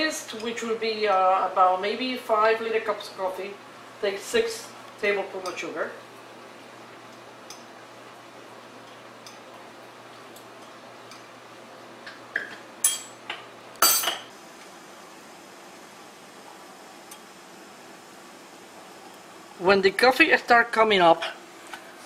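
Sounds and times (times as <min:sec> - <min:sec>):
spoon clinking on metal cup: 0:13.8 - 0:14.2.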